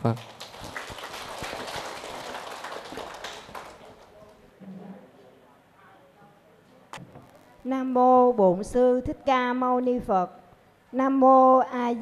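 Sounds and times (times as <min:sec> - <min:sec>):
audience applauding in a hall: 0:00.0 - 0:04.4.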